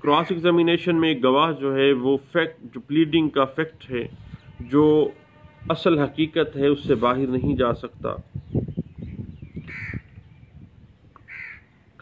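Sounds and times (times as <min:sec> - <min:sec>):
short bird calls: 0:09.6 - 0:10.2, 0:11.2 - 0:12.0.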